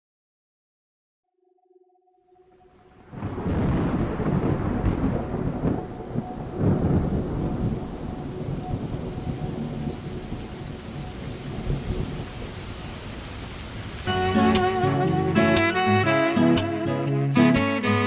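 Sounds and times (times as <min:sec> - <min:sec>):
rain-like rushing noise: 0:02.6 - 0:17.5
rolling thunder: 0:03.0 - 0:13.8.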